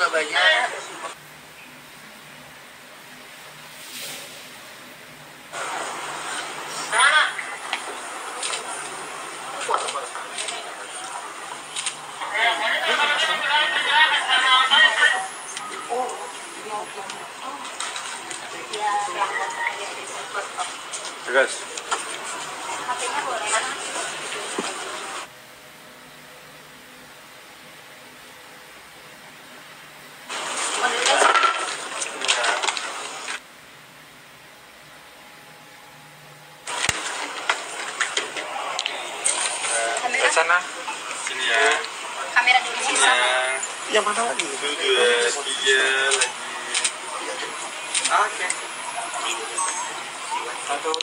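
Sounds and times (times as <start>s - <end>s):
low hiss: 0.8s - 18.3s
faint hum: 31.8s - 51.0s.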